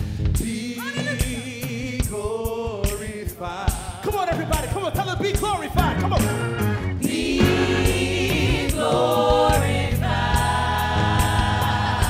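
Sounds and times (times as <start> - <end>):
steady beat and bass line: 4.2 - 12.0
choir singing in harmony: 6.8 - 12.0.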